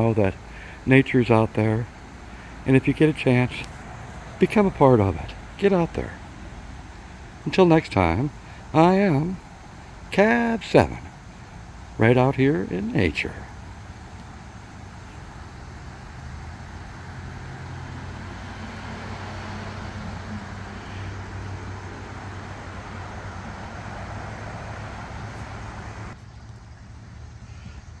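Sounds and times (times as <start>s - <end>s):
road traffic noise: 0.0s - 28.0s.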